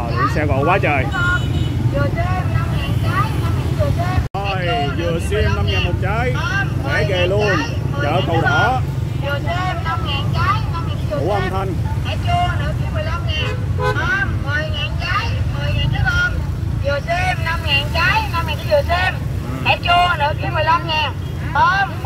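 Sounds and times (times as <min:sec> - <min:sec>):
vendors and shoppers talking: 0:00.0 - 0:22.0.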